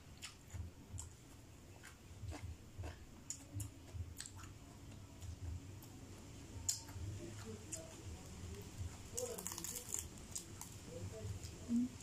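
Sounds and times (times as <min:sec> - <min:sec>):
crispy pork skin crackling: 0:06.7 - 0:11.6.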